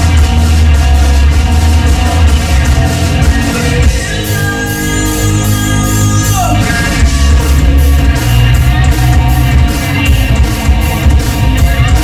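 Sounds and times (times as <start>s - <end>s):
hard rock band playing: 0.0s - 12.0s.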